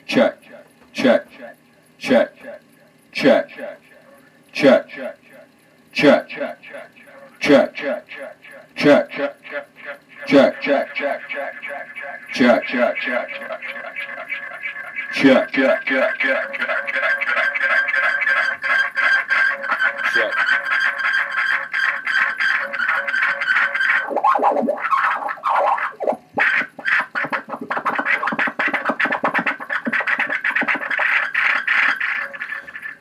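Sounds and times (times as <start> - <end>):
tape echo of spoken word: 0.0 - 14.2, 15.0 - 17.5
ringing feedback tone: 9.2 - 24.4.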